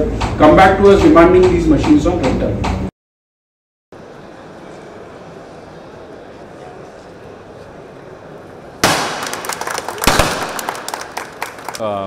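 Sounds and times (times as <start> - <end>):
confetti cannon bang: 8.8 - 11.0
crowd clapping: 8.8 - 12.0.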